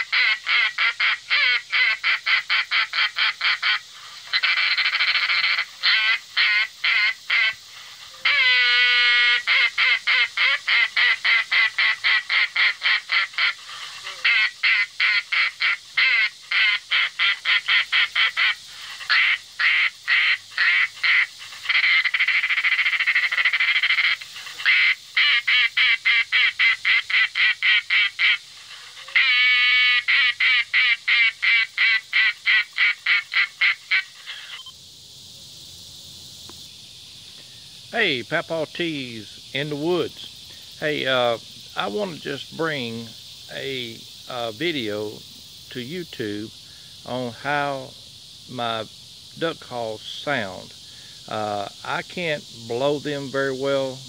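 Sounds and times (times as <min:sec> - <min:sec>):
duck call quacks: 0:00.0 - 0:07.6, 0:08.2 - 0:28.4, 0:29.0 - 0:34.7.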